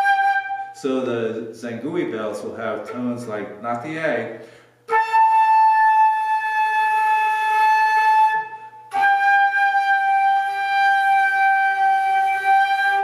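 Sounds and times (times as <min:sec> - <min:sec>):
flute playing long held notes: 0:00.0 - 0:00.8, 0:04.9 - 0:13.0.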